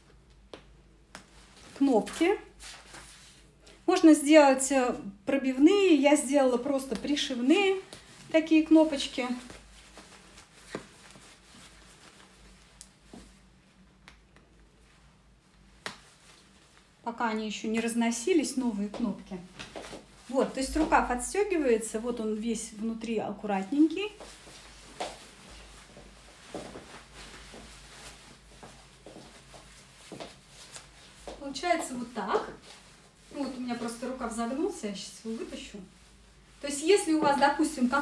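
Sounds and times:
jacket fabric rustling: 0:00.0 - 0:03.6, 0:06.5 - 0:17.0, 0:18.1 - 0:38.0.

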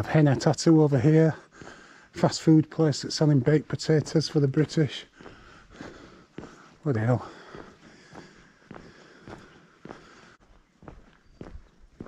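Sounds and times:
footsteps on stone paving: 0:00.0 - 0:12.0.

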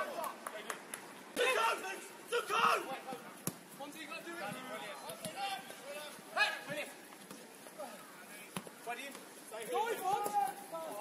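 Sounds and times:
players and spectators shouting: 0:01.4 - 0:03.2.

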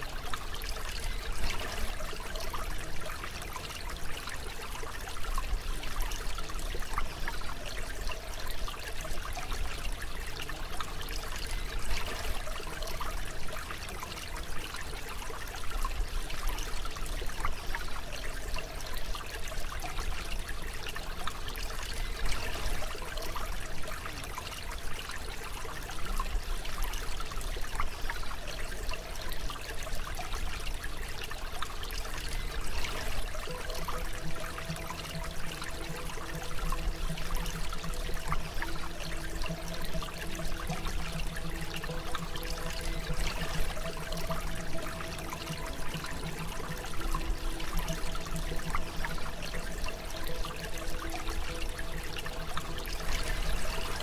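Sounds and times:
faint steady tones: 0:00.0 - 0:54.0
running water trickling: 0:00.0 - 0:54.0
low steady drone: 0:28.3 - 0:54.0.

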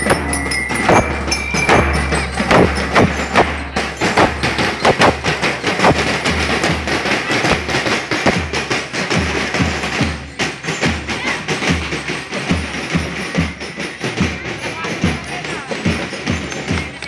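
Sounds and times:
deep bass drum beat: 0:00.0 - 0:10.0
parade band drums: 0:00.0 - 0:17.0.

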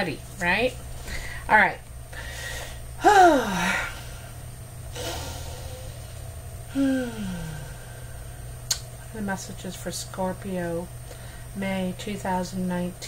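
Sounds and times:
woman sighing: 0:02.2 - 0:04.3, 0:05.0 - 0:08.4
breath drawn in: 0:04.9 - 0:06.2
small click: 0:08.7 - 0:08.9.

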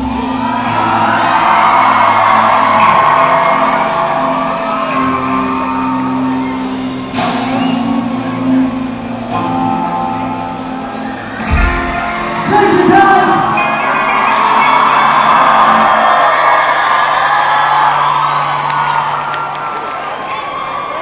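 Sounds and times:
electric guitars ringing chords: 0:00.0 - 0:16.6
drums: 0:00.0 - 0:19.2
crowd shouting and cheering: 0:00.0 - 0:21.0.

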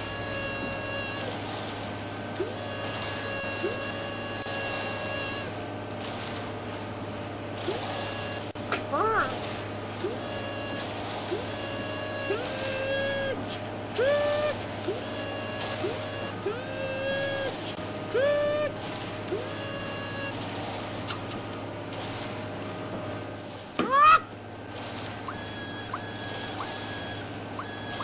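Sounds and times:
short gliding pitched tones: 0:00.0 - 0:01.4, 0:02.4 - 0:05.6, 0:07.6 - 0:09.4, 0:10.0 - 0:20.5, 0:25.2 - 0:28.0
steady low hum: 0:00.0 - 0:28.0.

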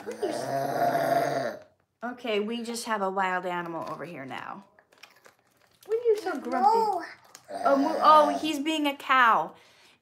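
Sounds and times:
toddler making gravelly animal noise: 0:00.0 - 0:01.6, 0:06.7 - 0:08.6.

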